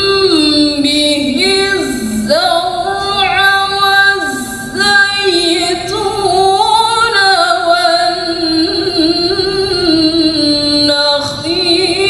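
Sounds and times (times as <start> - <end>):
woman chanting melodically: 0.0 - 12.0.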